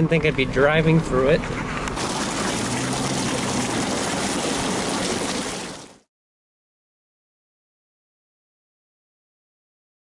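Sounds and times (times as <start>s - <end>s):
tyre splashing through water: 2.0s - 6.1s.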